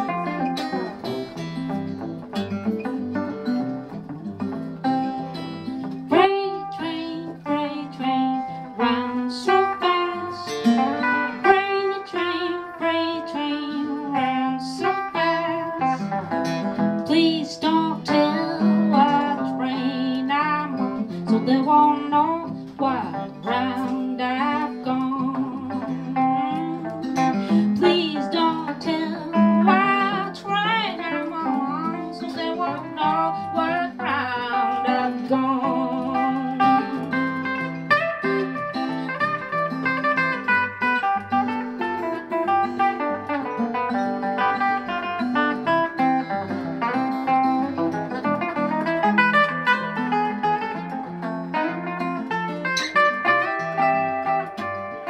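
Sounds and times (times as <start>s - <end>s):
fingerpicked guitars: 0.0s - 55.0s
woman singing: 5.9s - 16.4s, 17.0s - 38.6s.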